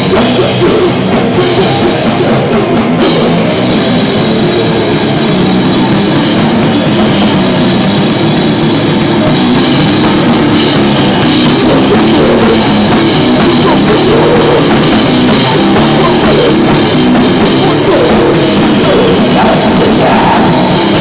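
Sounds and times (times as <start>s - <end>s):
hardcore band playing loudly: 0.0s - 21.0s.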